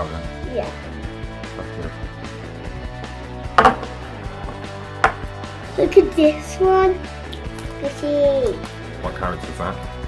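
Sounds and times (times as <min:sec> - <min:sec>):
background music: 0:00.0 - 0:10.0
plastic capsule knocking on table: 0:03.6 - 0:05.3.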